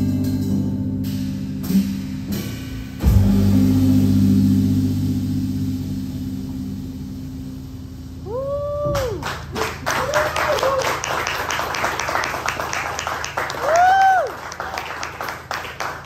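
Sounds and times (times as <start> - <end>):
jazz combo playing: 0.0 - 9.6
person whooping: 8.2 - 11.1, 13.5 - 14.5
people clapping: 8.9 - 16.0.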